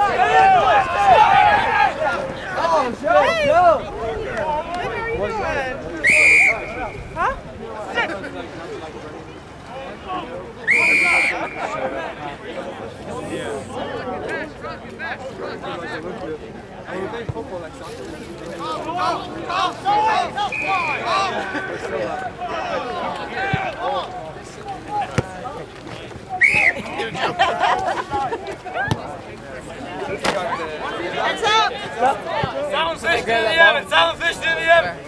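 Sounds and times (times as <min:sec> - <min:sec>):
people shouting: 0:00.0 - 0:04.6, 0:19.5 - 0:24.0
spectators' voices: 0:00.0 - 0:35.0
referee's whistle blast: 0:06.0 - 0:07.2, 0:10.7 - 0:11.8, 0:20.4 - 0:21.2, 0:26.4 - 0:26.8.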